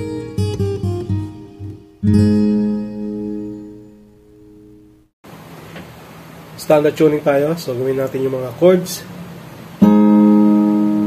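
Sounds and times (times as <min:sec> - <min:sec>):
acoustic guitar chord strummed: 0:00.0 - 0:05.1, 0:09.8 - 0:11.0.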